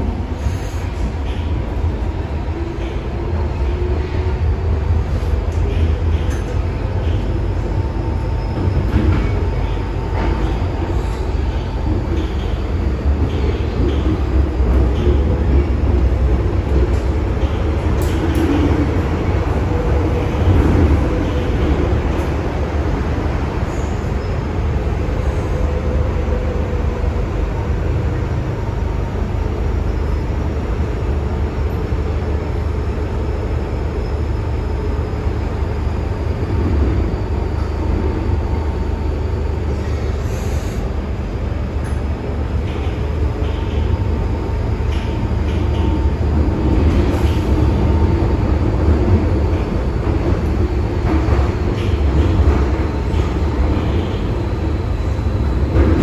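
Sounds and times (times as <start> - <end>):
train wheels rumbling: 0.0 - 56.0.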